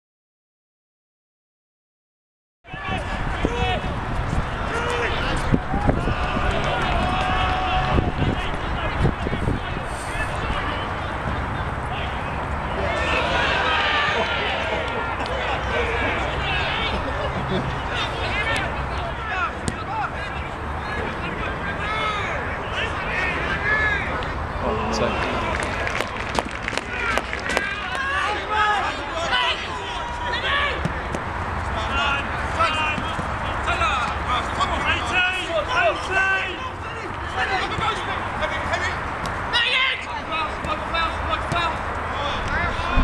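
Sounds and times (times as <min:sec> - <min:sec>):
players and spectators shouting: 0:02.7 - 0:43.0.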